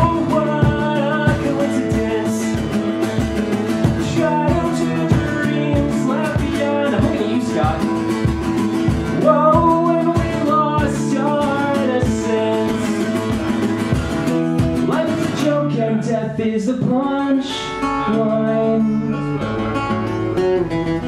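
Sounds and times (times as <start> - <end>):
person singing: 0.0 - 13.9, 14.8 - 19.9
guitar strumming: 0.0 - 21.0.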